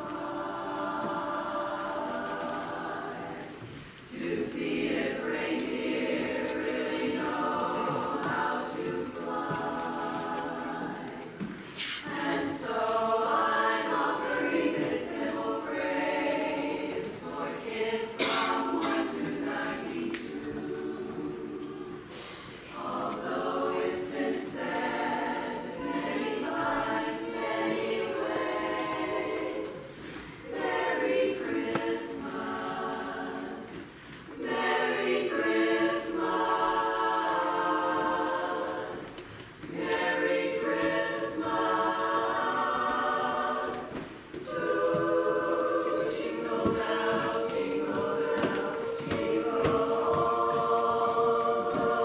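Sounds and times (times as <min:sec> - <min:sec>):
mixed choir singing a carol: 0:00.0 - 0:52.0
singers breathing: 0:22.0 - 0:22.8, 0:29.9 - 0:30.4.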